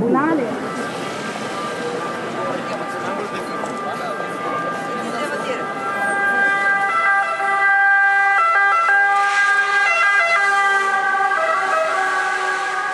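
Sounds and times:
emergency vehicle siren: 0:00.0 - 0:12.9.

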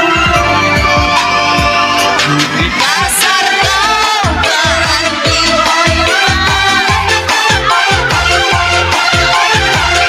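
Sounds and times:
high synth melody: 0:00.0 - 0:10.0.

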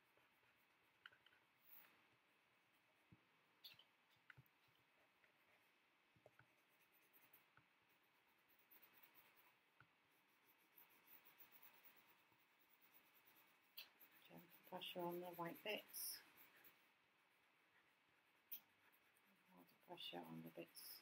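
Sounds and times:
pencil scratching on paper: 0:00.0 - 0:02.0, 0:03.7 - 0:21.0.

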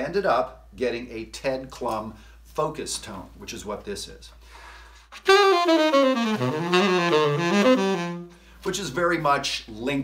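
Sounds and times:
tenor saxophone jazz phrase: 0:05.2 - 0:08.3.

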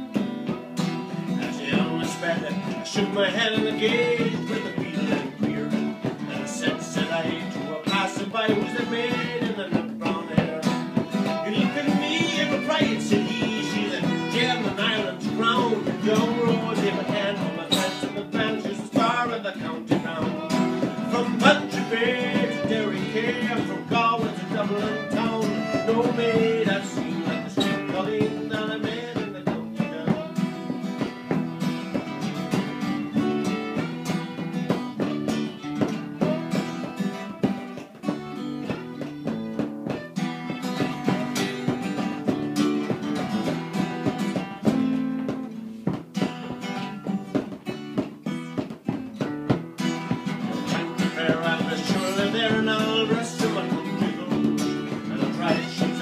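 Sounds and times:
fiddle playing melody: 0:00.0 - 0:45.7, 0:49.8 - 0:56.0
acoustic guitar strumming: 0:00.0 - 0:56.0
frame drum beaten: 0:00.0 - 0:56.0.

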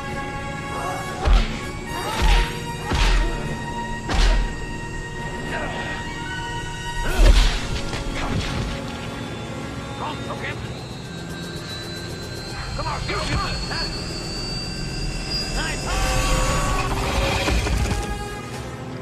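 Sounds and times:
orchestral music: 0:00.0 - 0:19.0
propeller aircraft engines: 0:00.0 - 0:19.0.

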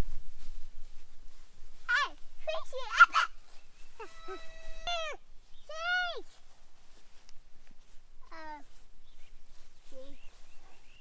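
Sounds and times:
toddler's high-pitched calls: 0:01.9 - 0:03.4, 0:04.0 - 0:06.4, 0:08.3 - 0:08.8.

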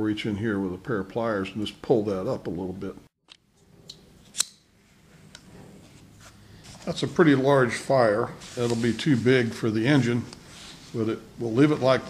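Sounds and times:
low soft burner sound: 0:03.4 - 0:12.0.

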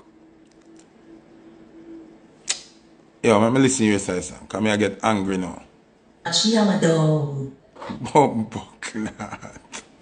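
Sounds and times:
faint steady hum: 0:00.0 - 0:10.0
short sharp click: 0:02.4 - 0:02.8.

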